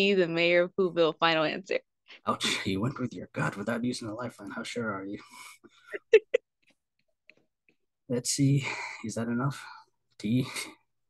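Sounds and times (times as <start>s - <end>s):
woman laughing: 5.8s - 6.6s.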